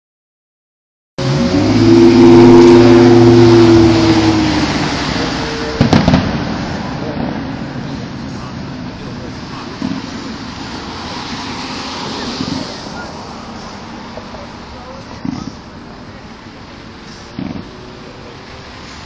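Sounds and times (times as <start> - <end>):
loud steady pitched tone: 1.2 - 6.1
firework bang: 5.0 - 8.5.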